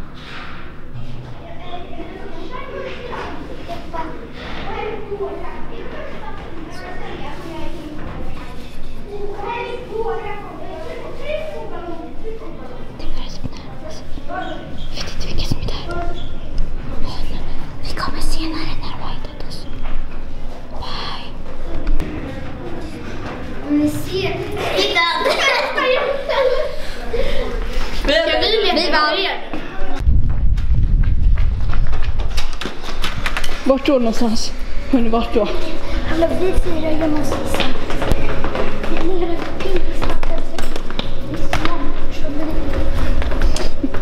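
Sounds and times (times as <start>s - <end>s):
children's voices: 1.3s - 19.7s, 20.6s - 30.0s, 33.5s - 44.0s
person whispering: 13.0s - 14.0s, 17.0s - 19.7s, 20.7s - 21.5s
footsteps on tiled stairs: 30.9s - 44.0s.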